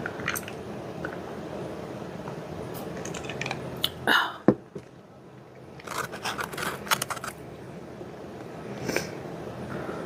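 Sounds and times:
eating and food crackles: 5.6s - 7.4s.

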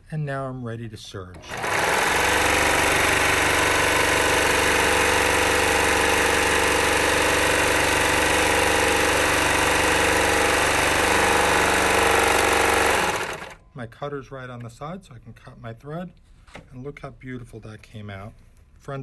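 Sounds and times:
serger machine stitching: 1.2s - 13.6s.

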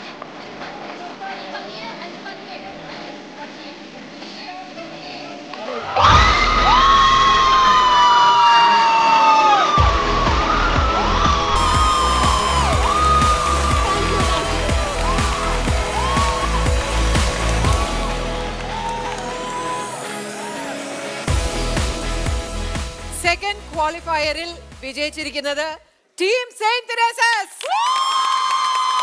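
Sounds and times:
loud whoop of celebration: 5.8s - 21.1s, 27.6s - 29.0s
audience cheering and clapping: 5.8s - 22.5s, 27.6s - 29.0s
victory music with steady beat: 9.8s - 25.0s.

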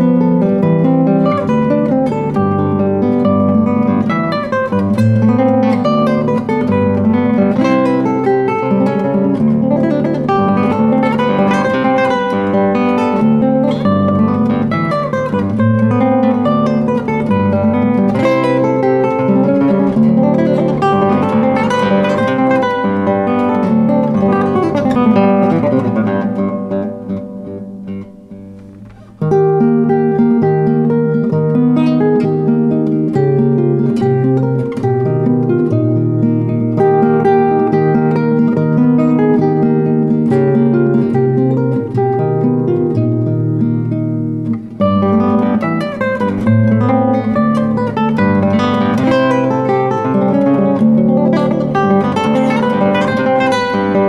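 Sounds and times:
fingerstyle classical guitar: 0.0s - 54.0s.

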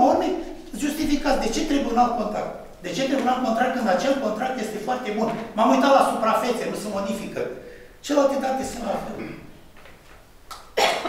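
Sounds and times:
person coughing: 9.2s - 9.5s, 10.8s - 11.0s.

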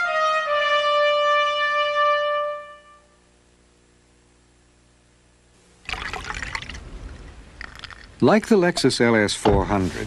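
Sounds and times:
water splashing: 5.8s - 7.3s.

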